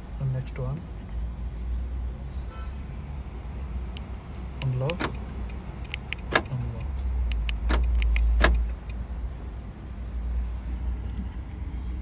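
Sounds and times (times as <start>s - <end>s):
sharp click: 4.0s - 9.0s.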